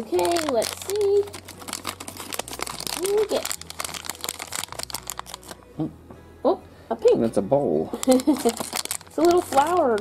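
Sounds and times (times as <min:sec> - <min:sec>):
foil packet crinkling and tearing: 0:00.0 - 0:05.6, 0:07.9 - 0:10.0.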